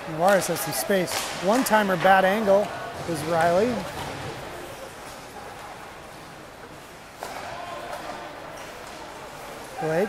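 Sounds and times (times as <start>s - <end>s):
hockey sticks and puck knocking: 0.2s - 4.4s.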